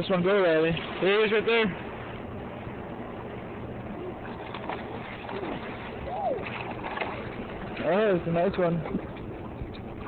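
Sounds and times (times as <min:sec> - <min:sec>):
rushing river water: 0:00.0 - 0:10.0.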